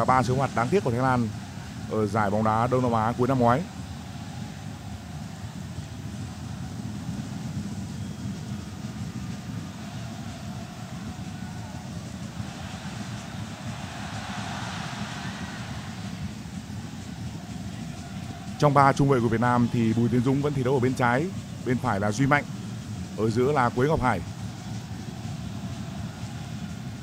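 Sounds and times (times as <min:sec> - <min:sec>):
stadium crowd hum: 0:00.0 - 0:27.0.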